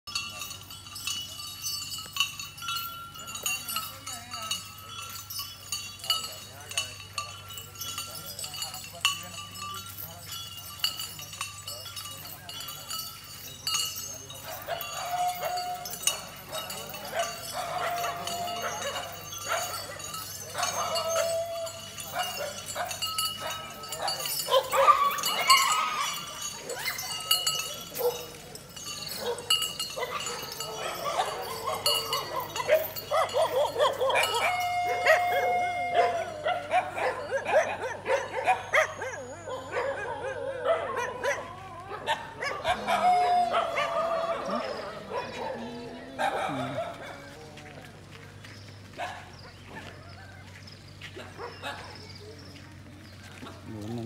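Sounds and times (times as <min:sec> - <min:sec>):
dogs barking: 0:13.7 - 0:47.6, 0:48.8 - 0:52.4.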